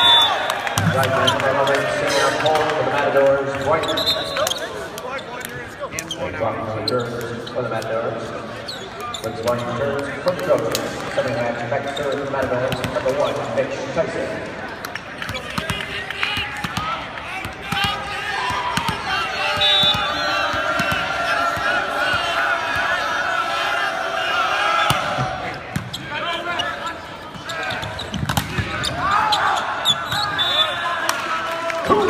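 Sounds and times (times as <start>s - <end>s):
indistinct echoing voices: 15.3s - 32.0s.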